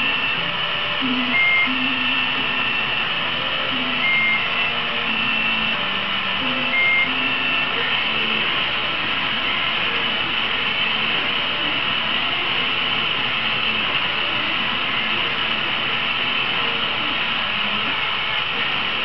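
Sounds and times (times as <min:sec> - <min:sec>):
short tones: 0:00.0 - 0:08.5
gas torch flame hissing: 0:00.0 - 0:19.0.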